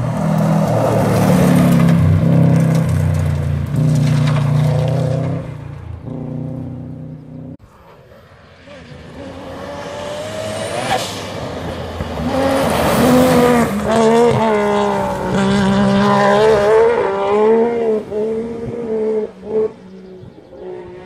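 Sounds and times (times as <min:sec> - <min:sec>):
rally car engine shifting gears: 0:00.0 - 0:08.0, 0:08.7 - 0:21.0
rally car engine on gravel: 0:00.0 - 0:21.0.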